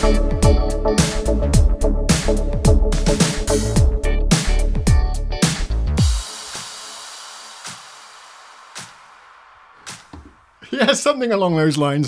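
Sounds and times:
keyboard chord ringing out: 0.0 - 4.3
keyboard with drum beat and bass: 0.0 - 8.2.

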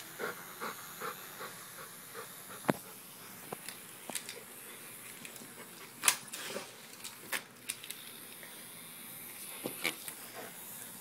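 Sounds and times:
dog panting: 0.0 - 3.0.

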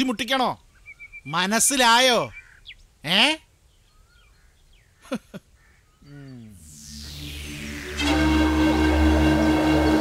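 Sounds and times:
faint birds chirping: 0.0 - 7.8
person saying eh: 6.0 - 6.6
low falling musical tone: 6.4 - 10.0
background music: 6.5 - 10.0.

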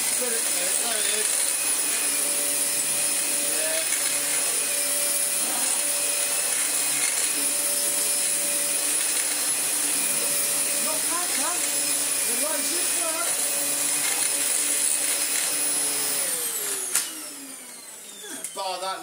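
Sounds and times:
vacuum brush bar turning: 0.0 - 17.6
vacuum cleaner motor whine: 0.0 - 19.0.

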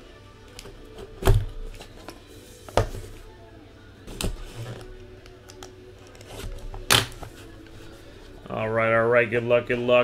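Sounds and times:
cardboard rustling and scraping: 4.1 - 5.0
cardboard snapping: 5.2 - 7.4.

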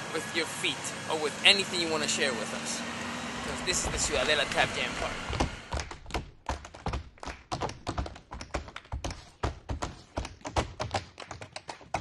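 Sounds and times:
tap shoes striking floor: 5.3 - 12.0.

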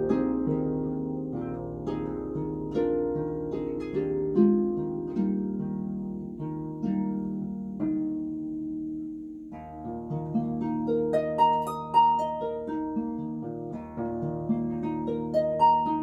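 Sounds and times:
harp playing: 0.0 - 16.0.

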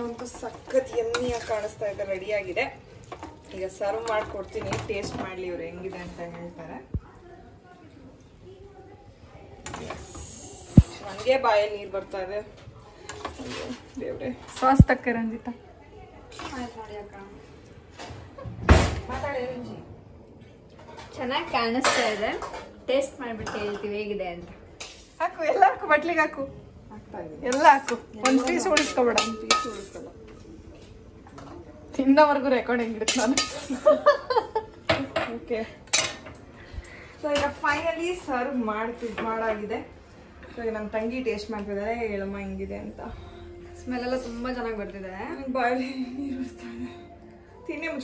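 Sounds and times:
spatula scraping metal pan: 0.1 - 2.0, 27.5 - 30.1.

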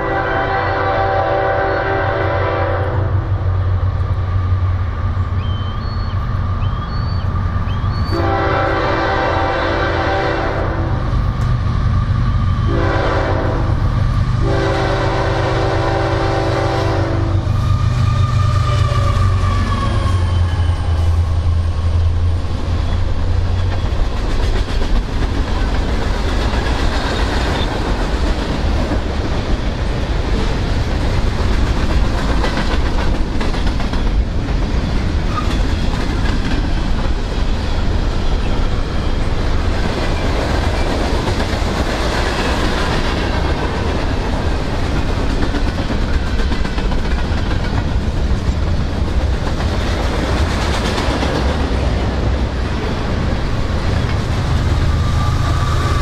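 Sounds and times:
train air horn: 0.0 - 3.4, 8.0 - 11.1, 12.6 - 21.3, 54.6 - 56.0
freight cars clickety-clack: 17.9 - 55.0.

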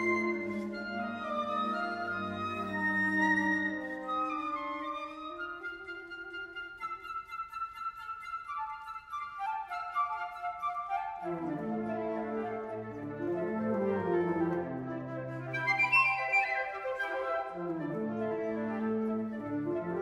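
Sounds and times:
flute ensemble playing: 0.0 - 20.0.

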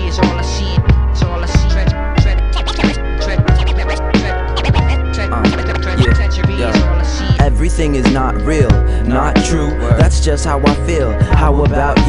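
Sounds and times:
bass line: 0.0 - 12.0
drum beat: 0.8 - 8.8, 9.9 - 12.0
turntable scratching: 1.2 - 7.5.

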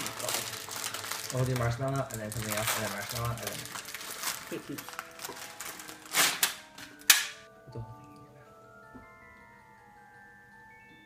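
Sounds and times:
plastic package crinkling: 0.0 - 7.2
sharp plastic crackles: 0.0 - 7.5
music with ringing notes: 0.0 - 11.0.

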